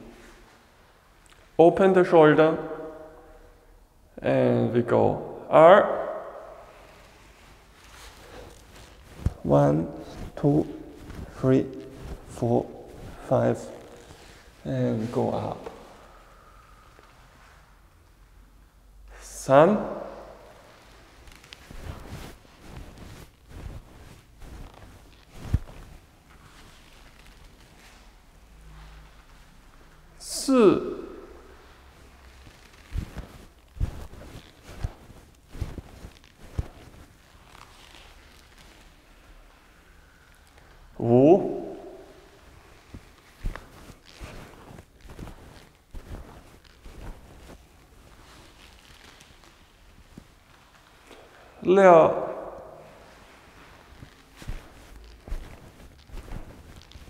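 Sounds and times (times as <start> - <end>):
clothing rustling: 0.0 - 1.6, 6.0 - 57.0
feet shuffling on concrete: 41.5 - 49.5, 52.9 - 57.0.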